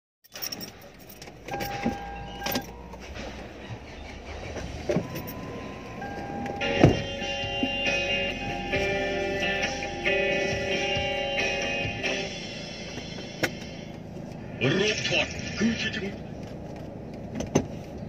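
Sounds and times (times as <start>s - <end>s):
music with steady tones: 4.5s - 14.0s.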